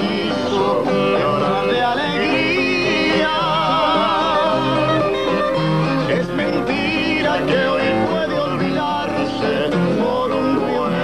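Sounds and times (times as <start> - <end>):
people singing: 0.0 - 11.0
plucked guitars: 0.0 - 11.0.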